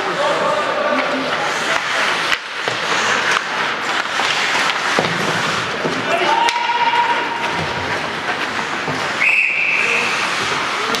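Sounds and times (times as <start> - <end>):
arena noise: 0.0 - 11.0
referee's whistle blast: 9.2 - 9.9.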